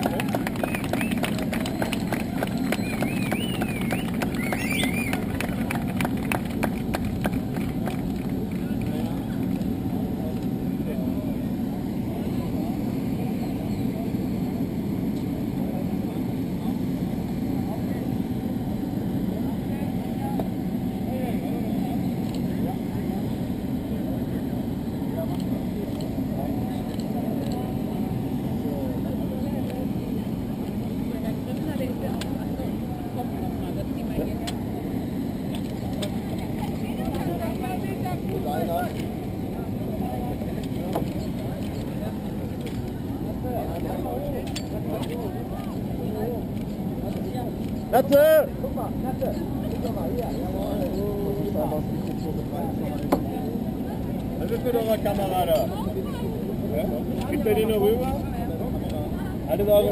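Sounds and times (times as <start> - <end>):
crowd talking: 0.0 - 59.9
low mechanical drone: 0.0 - 59.9.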